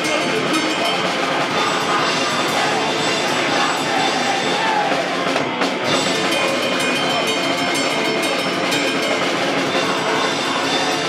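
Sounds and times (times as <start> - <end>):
bass: 0.0 - 11.0
distorted electric guitar: 0.0 - 11.0
drum kit: 0.0 - 11.0.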